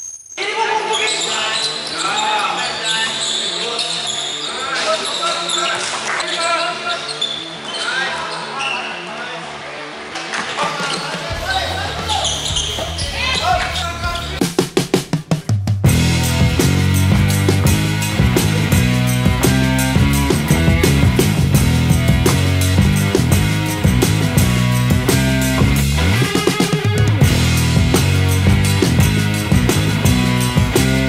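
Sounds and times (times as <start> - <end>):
players' voices echoing: 0.4 - 14.5
music with bass line: 11.3 - 31.0.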